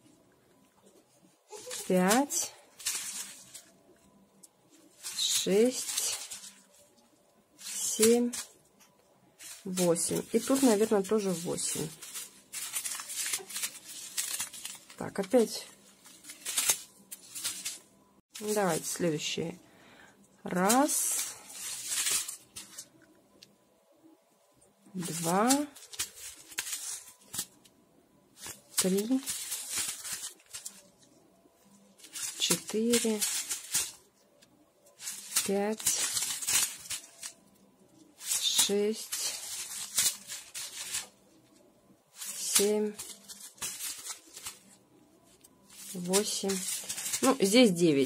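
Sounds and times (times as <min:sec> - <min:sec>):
plastic packs rustling and crinkling: 0:00.7 - 0:19.5, 0:20.5 - 0:23.4, 0:24.8 - 0:27.7, 0:28.3 - 0:48.0.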